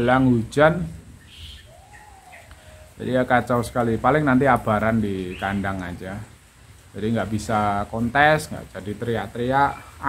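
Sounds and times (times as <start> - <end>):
faint bird calls: 1.2 - 3.2.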